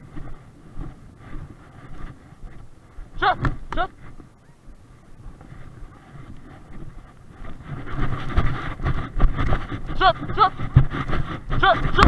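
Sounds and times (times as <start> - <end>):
footsteps on grass: 0.0 - 12.0
wind buffeting microphone: 0.0 - 12.0
herder calling: 3.0 - 4.8.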